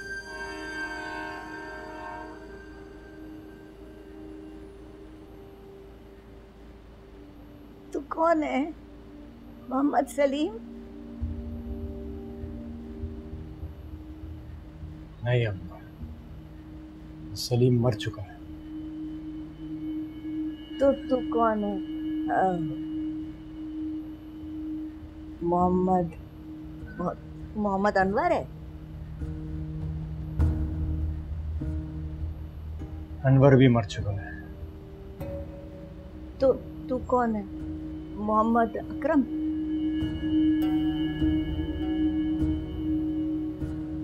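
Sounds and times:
held drone note: 0.0s - 6.2s, 11.2s - 44.0s
sustained drama score chord: 0.0s - 44.0s.

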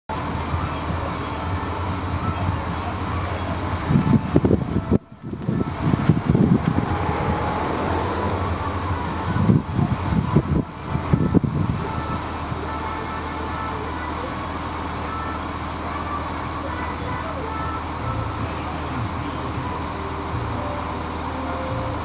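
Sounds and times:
bus engine idling: 0.1s - 22.0s
wind rumbling on microphone: 1.8s - 12.6s.

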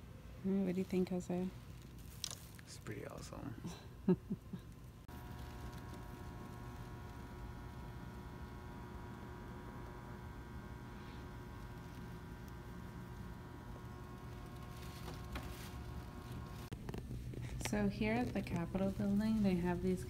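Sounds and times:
low hum: 3.6s - 20.0s.

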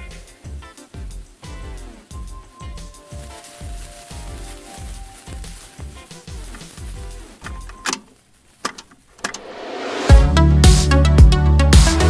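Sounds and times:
tape hiss: 0.0s - 10.1s
cassette clacking into tape deck: 7.4s - 9.5s.

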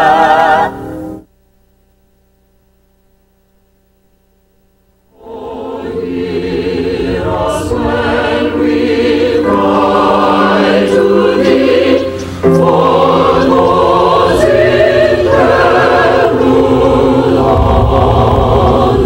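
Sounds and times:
choir singing held chords: 0.0s - 1.3s, 5.1s - 19.0s.

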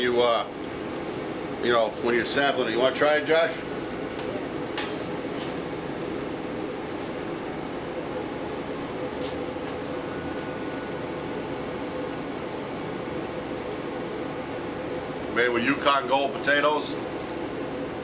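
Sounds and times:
ventilation hum: 0.0s - 18.0s.

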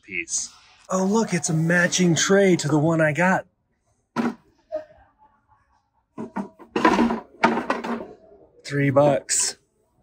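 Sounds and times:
clattering knocks and scrapes: 6.2s - 8.3s.

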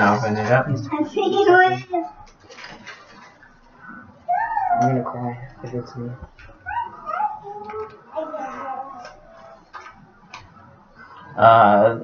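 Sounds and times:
soft voices: 3.8s - 9.9s.

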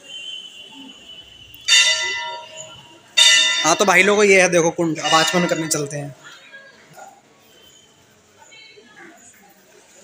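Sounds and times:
temple bell ringing: 1.7s - 6.2s.

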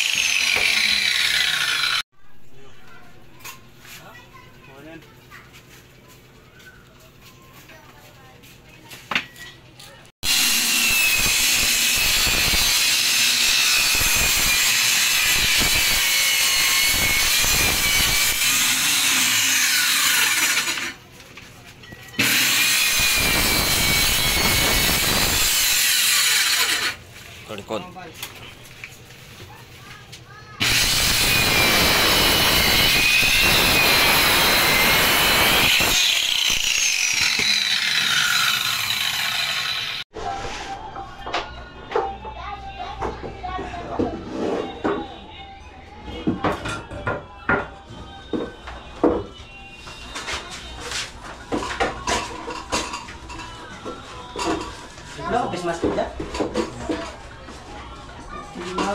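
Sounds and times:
circular saw cutting plywood: 0.0s - 2.0s, 10.2s - 21.0s, 22.2s - 27.0s, 30.6s - 40.0s.

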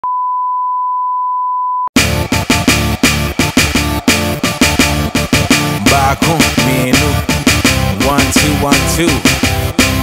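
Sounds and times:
steady test tone beep: 0.0s - 1.9s
hip-hop beat: 2.0s - 10.0s.

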